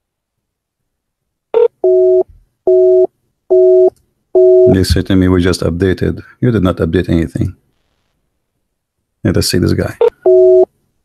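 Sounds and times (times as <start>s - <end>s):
telephone busy tone beeps: 1.6s - 4.8s, 10.1s - 10.7s.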